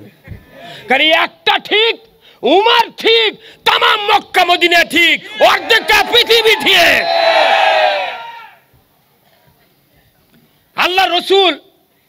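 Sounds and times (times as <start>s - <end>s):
man preaching over loudspeaker: 0.9s - 7.0s, 10.8s - 11.6s.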